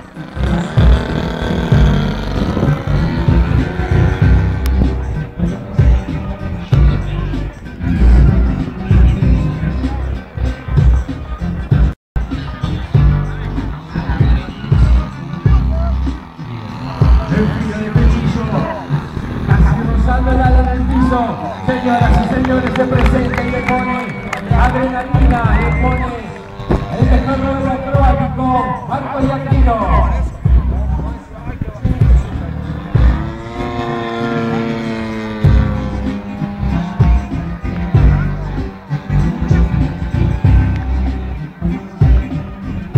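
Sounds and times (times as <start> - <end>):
model airplane engine: 0.0 - 10.3, 12.4 - 42.9
music with singing over loudspeaker: 0.0 - 42.9
low bass thumps: 0.4 - 28.6, 29.2 - 33.7, 35.3 - 42.9.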